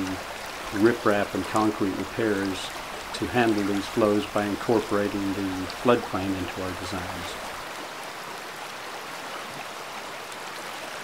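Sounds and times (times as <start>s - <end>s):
stream flowing: 0.0s - 11.0s.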